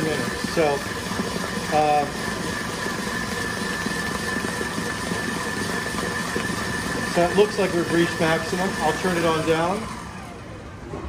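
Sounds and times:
stand mixer whisking: 0.0 - 10.7.

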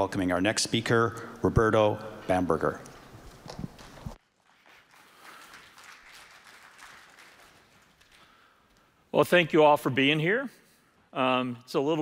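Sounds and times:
audience applauding: 4.3 - 8.5.

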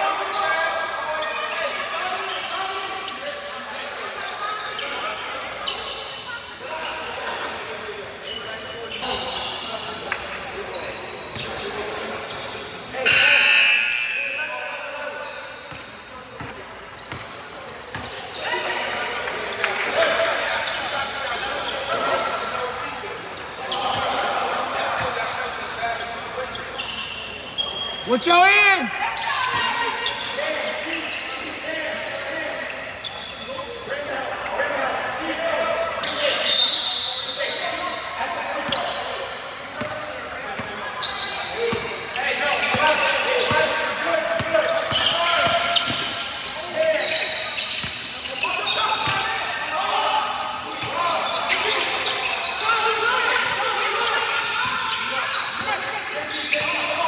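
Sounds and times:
voices of players: 0.0 - 57.0
short squeal: 36.0 - 39.9.

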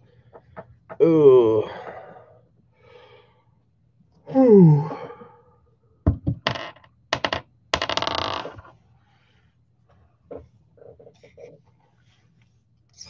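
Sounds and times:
man groaning: 1.0 - 2.0, 4.3 - 5.2.

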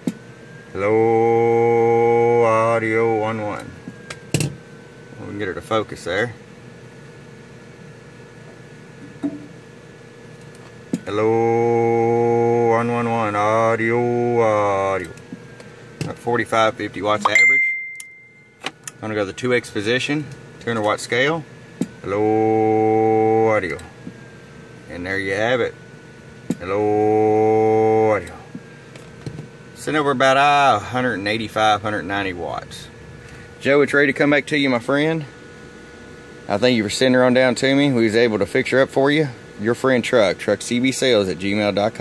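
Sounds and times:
man speaking into microphone: 16.0 - 17.6, 36.5 - 42.0.

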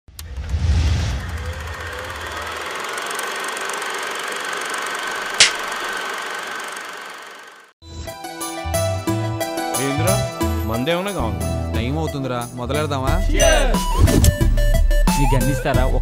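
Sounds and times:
low rumble: 0.2 - 2.7
mechanical whir: 0.2 - 7.7
sharp click: 5.4 - 5.7.

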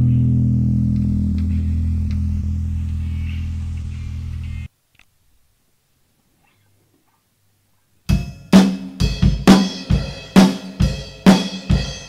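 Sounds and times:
electric guitar chord ringing: 0.0 - 4.7.

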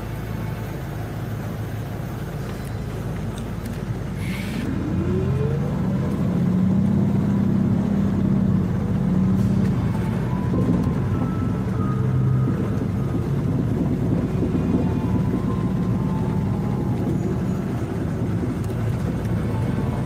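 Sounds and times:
bus engine rumble: 0.0 - 20.0
rising engine whine: 0.0 - 20.0.

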